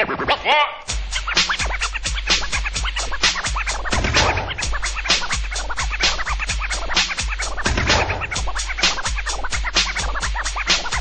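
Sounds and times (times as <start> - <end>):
dance megamix: 0.0 - 11.0
turntable scratching: 0.0 - 11.0
deep bass line: 0.9 - 10.4.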